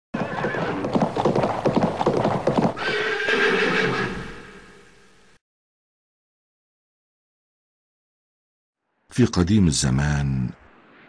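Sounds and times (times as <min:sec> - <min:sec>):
horse whinny: 0:00.1 - 0:01.1, 0:02.7 - 0:04.7
horse hoofbeats galloping: 0:00.1 - 0:02.9.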